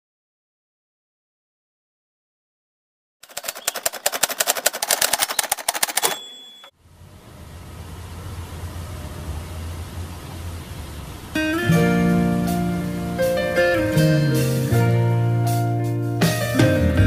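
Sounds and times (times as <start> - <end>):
fast rattle of sharp clicks: 3.2 - 6.7
brief high tone: 6.0 - 6.7.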